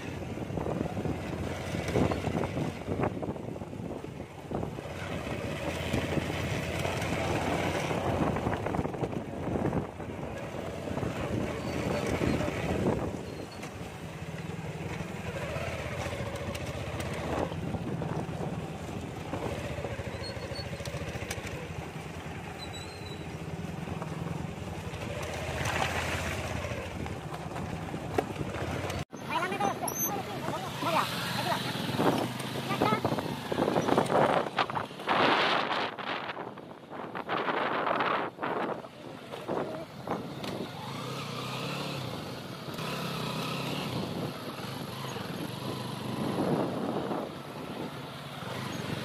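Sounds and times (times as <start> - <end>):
small motorcycle engine running: 0.0 - 3.4, 4.5 - 36.2, 37.4 - 49.0
voices: 4.9 - 24.2, 28.4 - 35.6, 38.0 - 49.0.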